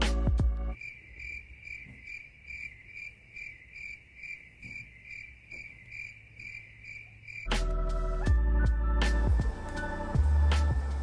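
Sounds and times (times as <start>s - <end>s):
crickets chirping: 0.7s - 8.1s.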